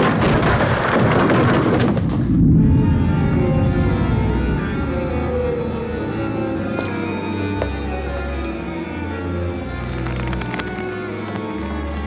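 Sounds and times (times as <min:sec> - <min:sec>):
dramatic music: 0:01.9 - 0:12.0.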